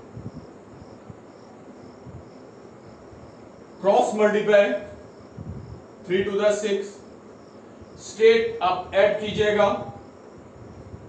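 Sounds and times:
insect chirping: 0.0s - 11.0s
room hiss: 0.0s - 11.0s
man talking: 3.8s - 4.9s, 6.1s - 7.0s, 8.0s - 10.0s.

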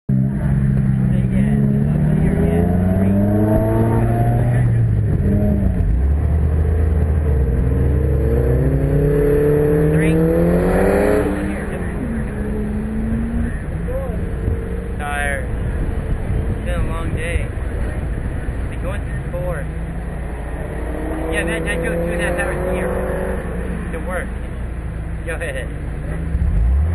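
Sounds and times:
car engine idling: 0.1s - 26.9s
car engine pulling away: 0.1s - 26.9s.

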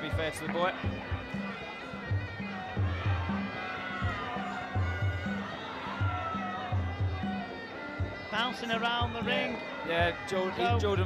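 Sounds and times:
reedy oboe melody: 0.0s - 11.0s
repeating drum beat: 0.1s - 7.4s.

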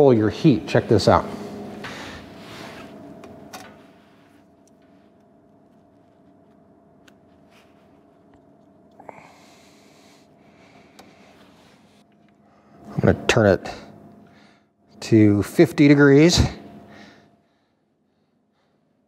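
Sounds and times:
faint steady hum: 0.0s - 19.0s.

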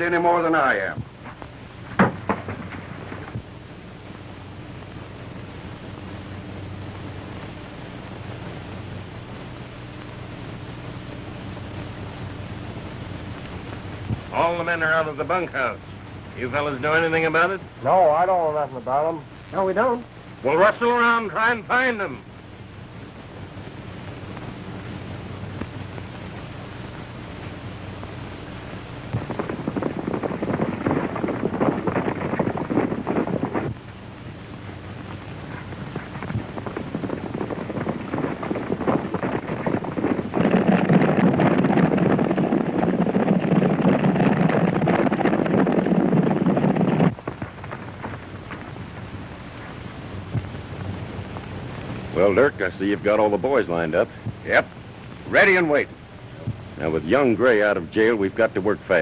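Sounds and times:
old film soundtrack hiss and hum: 0.0s - 59.0s
horses galloping: 35.5s - 49.1s.

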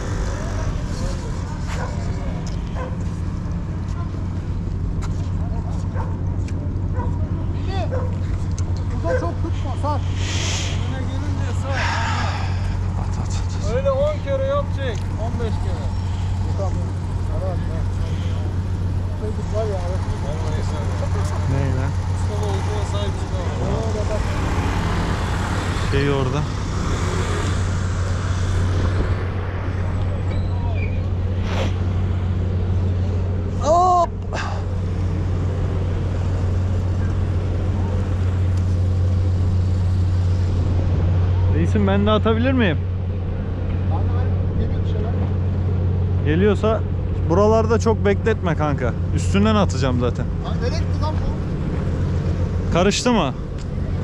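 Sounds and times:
low engine drone: 0.0s - 54.0s.

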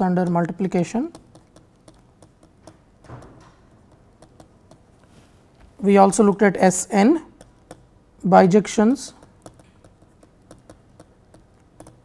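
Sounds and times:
stylus tapping on tablet screen: 0.0s - 8.2s, 8.8s - 12.0s.

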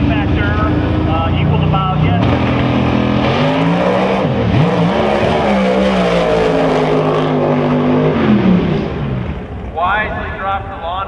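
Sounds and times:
drag race cars at full throttle: 0.0s - 11.0s.

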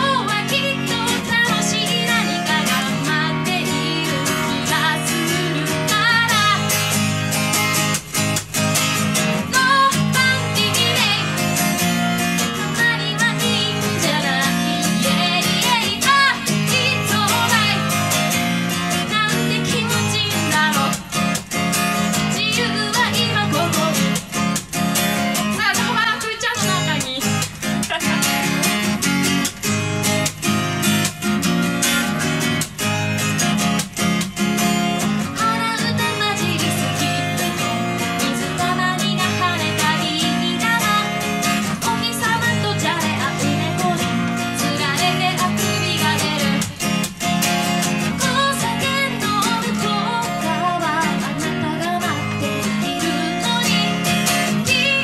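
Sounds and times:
woman singing: 0.0s - 7.4s, 9.2s - 29.0s, 34.6s - 55.0s
strummed acoustic guitar: 0.0s - 55.0s.

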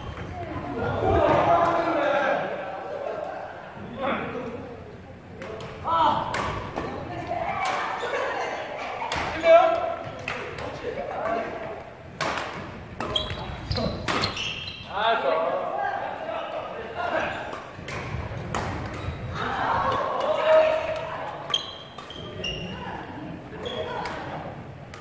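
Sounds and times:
people talking: 0.2s - 11.9s, 22.2s - 24.6s
rackets striking shuttlecock: 12.2s - 13.4s, 14.0s - 14.4s.

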